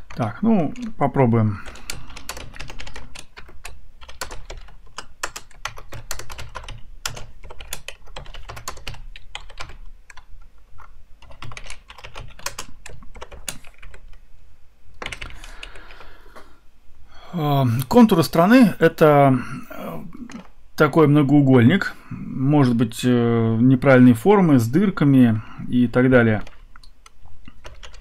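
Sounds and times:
typing on computer keyboard: 1.6 - 14.2, 15.0 - 16.1, 26.4 - 28.0.

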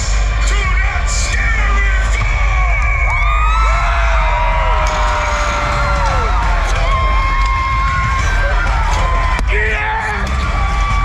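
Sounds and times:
crowd screaming and whooping: 0.0 - 11.0
music: 0.0 - 11.0.

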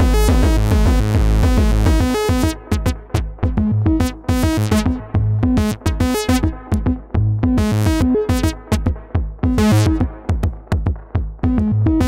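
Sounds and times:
synth sequenced melody: 0.0 - 10.3
distorted kick drum: 0.0 - 12.0.

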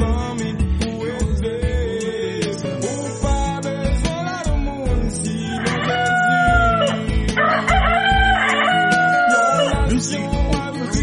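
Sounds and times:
music with steady drum beat: 0.0 - 11.0
rooster crowing: 5.3 - 9.9.

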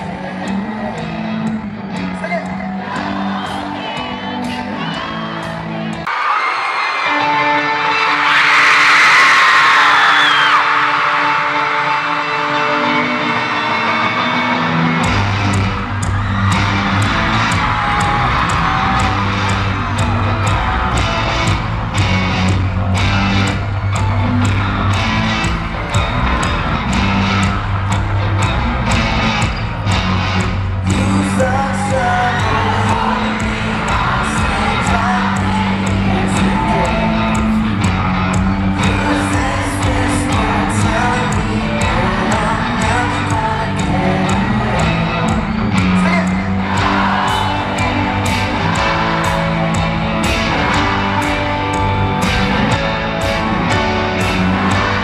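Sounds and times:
bass guitar: 0.0 - 6.1, 11.8 - 55.0
crowd screaming: 0.0 - 55.0
drums: 0.0 - 55.0
electric guitar: 0.0 - 55.0.

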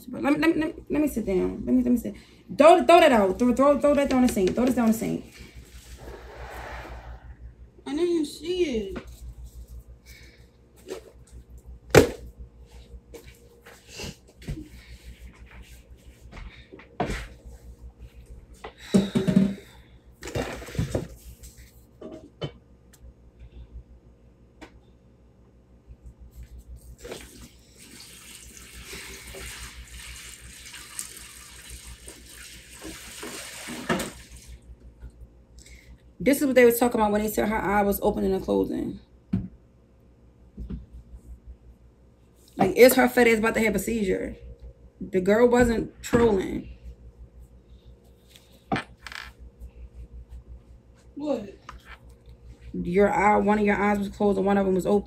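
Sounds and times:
water running into a sink: 27.0 - 34.6.

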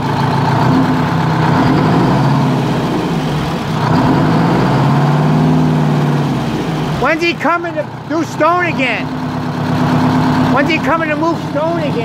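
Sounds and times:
diesel engine misfiring: 0.0 - 12.0.

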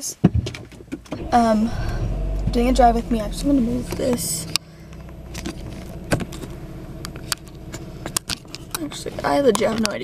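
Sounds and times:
car engine hum: 0.3 - 10.0.

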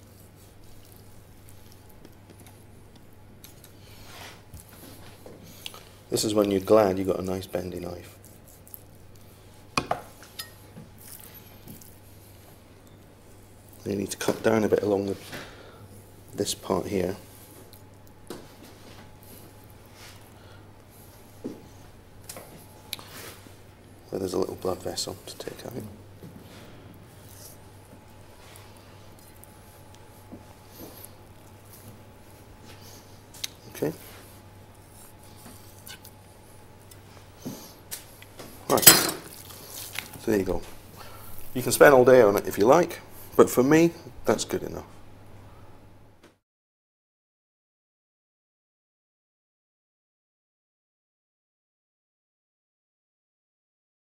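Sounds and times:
low steady hum: 0.0 - 46.2
knife scraping: 8.0 - 12.0, 34.7 - 36.2.

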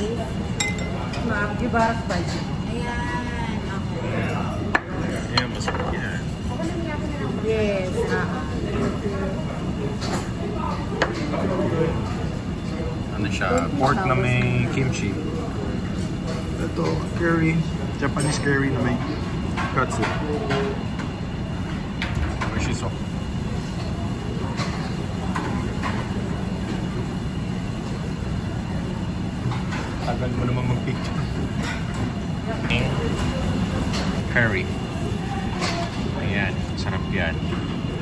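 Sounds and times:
restaurant room rumble: 0.0 - 38.0
tableware tapping on table: 4.7 - 6.0.

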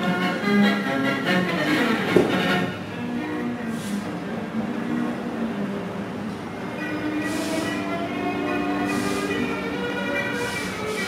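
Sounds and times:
vinyl record music held chords: 0.0 - 2.9, 4.3 - 11.0
swishing hiss: 7.1 - 11.0.

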